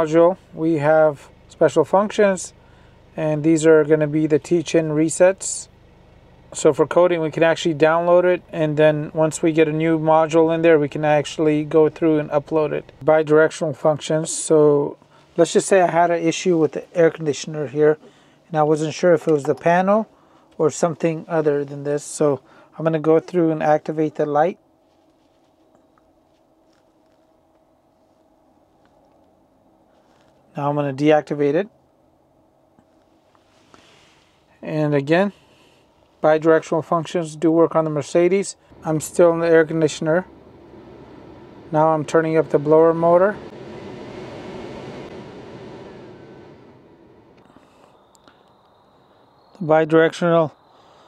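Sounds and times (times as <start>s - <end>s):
faint steady hum: 0.0s - 51.0s
blower motor rushing air: 0.4s - 21.4s, 38.6s - 48.4s.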